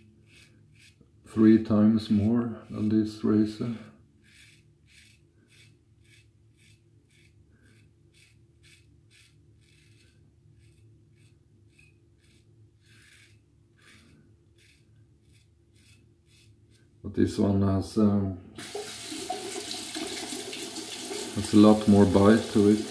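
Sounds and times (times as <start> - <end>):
razor scraping stubble: 0.0 - 16.9, 18.6 - 22.9.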